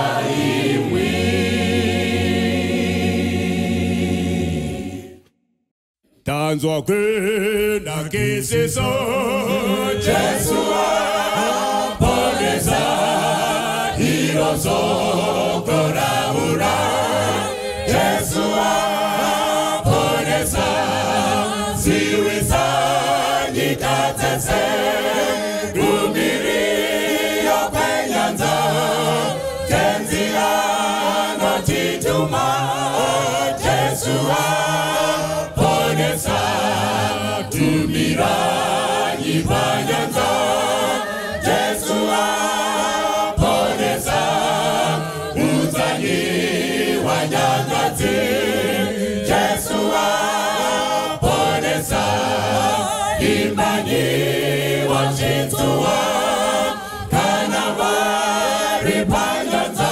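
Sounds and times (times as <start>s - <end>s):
choir singing gospel: 0.0s - 5.3s, 6.9s - 59.9s
men singing lead into microphones: 6.4s - 59.9s.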